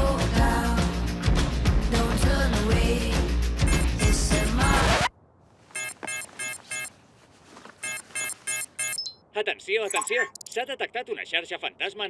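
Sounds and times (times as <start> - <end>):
electronic alert beeping: 3.7 - 4.9, 5.8 - 6.9, 7.8 - 9.3, 9.9 - 10.7.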